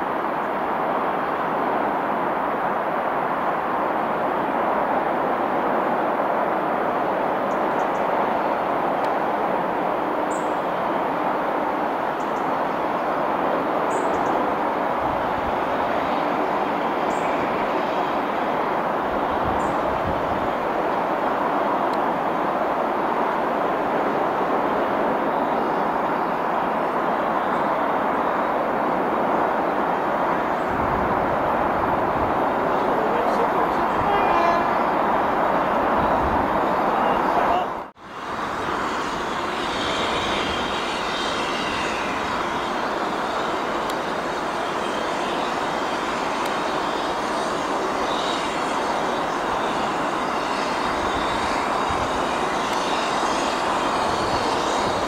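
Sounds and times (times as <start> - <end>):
distant steam locomotive exhaust: 0.0 - 55.0.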